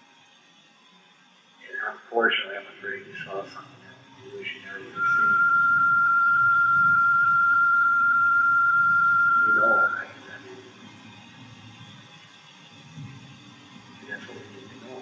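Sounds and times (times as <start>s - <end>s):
low hiss: 1.7s - 11.5s.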